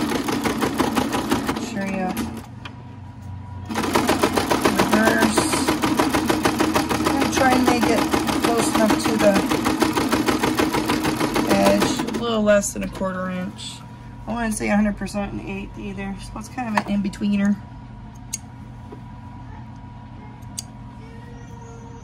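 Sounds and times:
sewing machine stitching: 0.0 - 2.5, 3.7 - 12.2.

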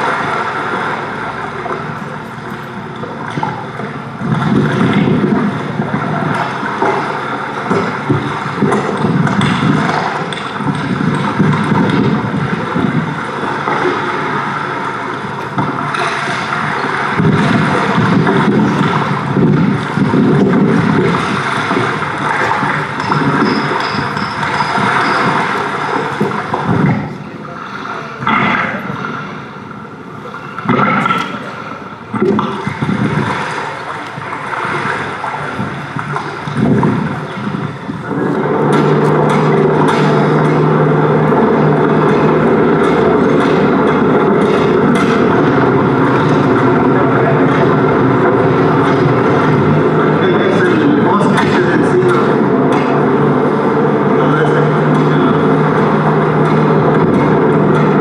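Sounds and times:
lakeshore water: 0.0 - 58.0
gusty wind: 2.4 - 27.3, 28.1 - 58.0.

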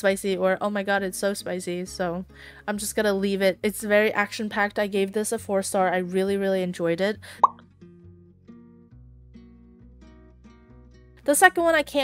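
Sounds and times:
plucked guitar background music: 0.0 - 12.0
pop rising in pitch: 7.4 - 7.6.

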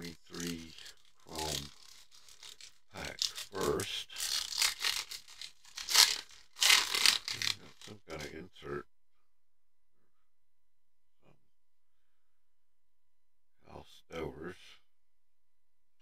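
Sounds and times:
foil wrapper crinkling and tearing: 0.0 - 8.0.

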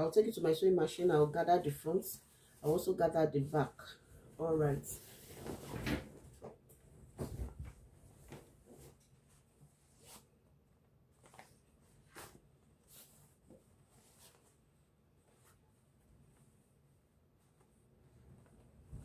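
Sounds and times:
fabric rustling: 2.2 - 19.0.

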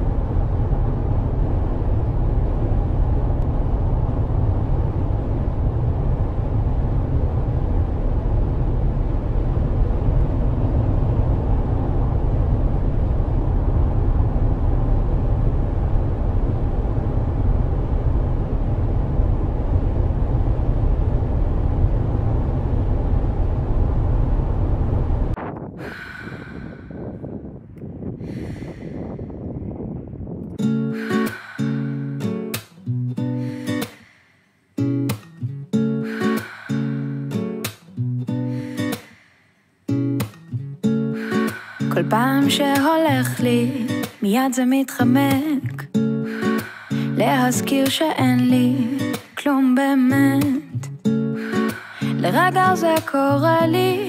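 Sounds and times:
loud low rumble: 0.0 - 30.5.

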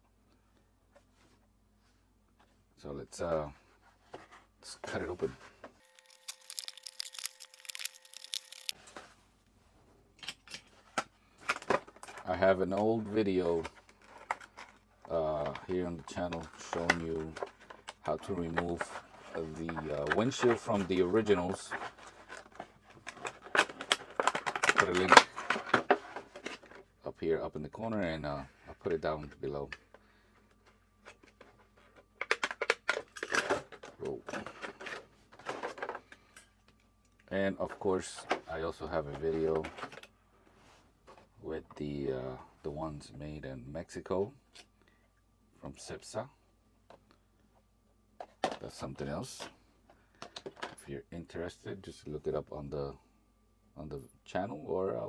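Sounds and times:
plastic package crackling clicks: 5.8 - 8.8.

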